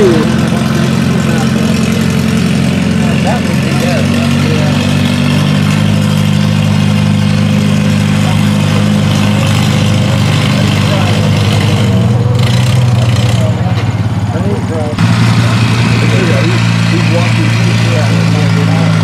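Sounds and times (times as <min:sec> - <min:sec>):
tractor engine working hard: 0:00.0 - 0:19.0.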